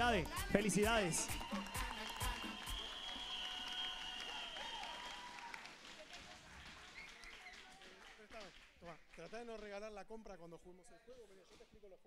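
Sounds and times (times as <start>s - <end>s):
audience applauding: 0.2s - 9.9s.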